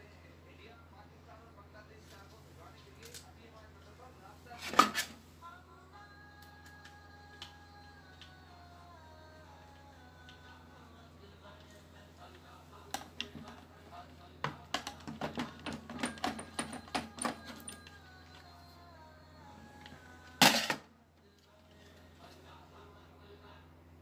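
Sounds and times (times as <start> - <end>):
faint music: 0.0 - 24.0
clicks and knocks of handling: 14.4 - 17.9.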